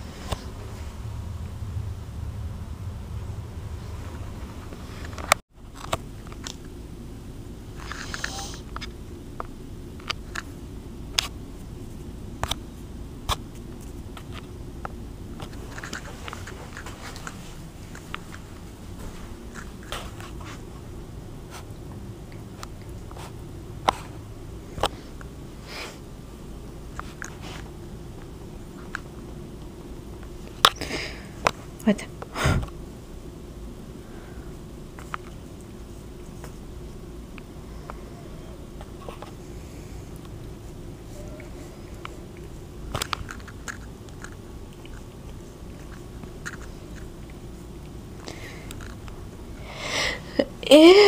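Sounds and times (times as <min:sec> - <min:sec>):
low rumble of handling: 0:00.0 - 0:30.7
low steady hum: 0:00.0 - 0:51.0.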